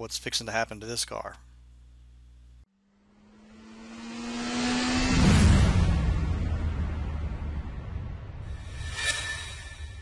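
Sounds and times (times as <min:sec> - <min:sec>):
faint steady hum: 0:00.0 - 0:02.7
rushing whoosh: 0:03.6 - 0:10.0
loud low rumble: 0:05.0 - 0:10.0.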